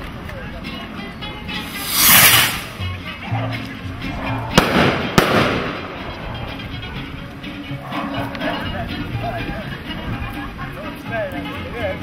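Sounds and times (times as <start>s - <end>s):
firecracker bangs with hiss: 1.6s - 2.8s, 4.6s - 5.8s.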